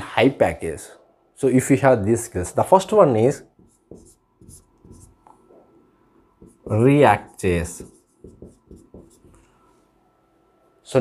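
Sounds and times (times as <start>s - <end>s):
marker scratching on whiteboard: 3.2s - 5.5s, 6.1s - 9.9s.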